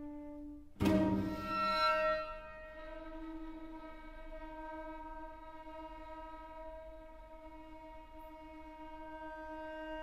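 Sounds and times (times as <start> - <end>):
string quartet sustained note: 0.0 - 10.0.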